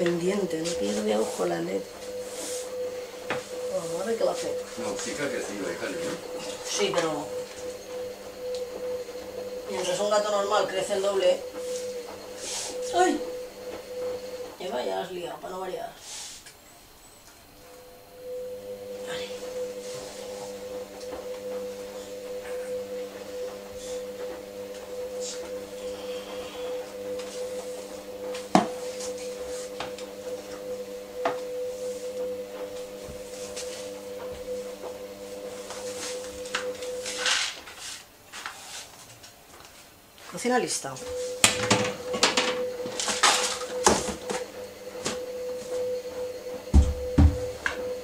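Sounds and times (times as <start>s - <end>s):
steady electric hum: 0.0s - 48.0s.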